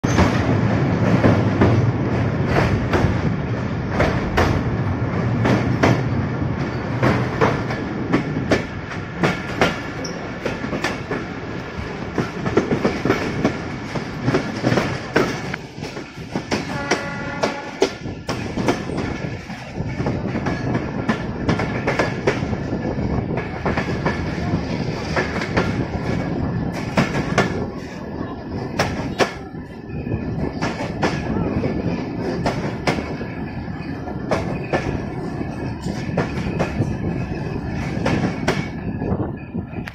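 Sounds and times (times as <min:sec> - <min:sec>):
train running rumble: 0:00.0 - 0:39.9
train wheels clattering over rail joints: 0:00.0 - 0:39.9.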